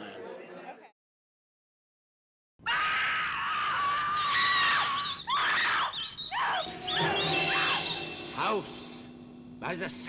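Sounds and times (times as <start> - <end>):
long high scream: 2.7 - 8.1
low steady music tones: 6.7 - 10.0.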